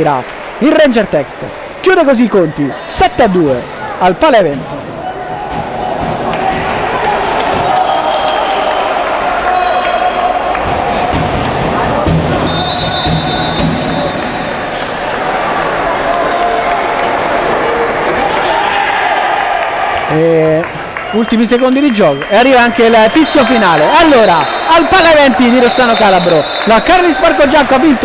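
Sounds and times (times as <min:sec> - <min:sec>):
players shouting: 0:23.0 - 0:28.0.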